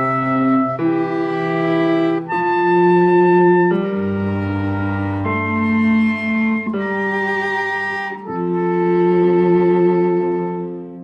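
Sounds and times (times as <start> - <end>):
cello: 0.0 - 11.0
piano: 0.0 - 11.0
soprano saxophone: 0.0 - 11.0.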